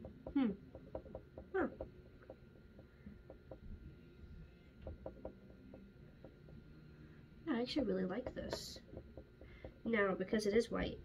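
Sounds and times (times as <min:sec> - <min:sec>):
small taps and clicks of makeup: 0:00.0 - 0:03.8, 0:04.8 - 0:06.6.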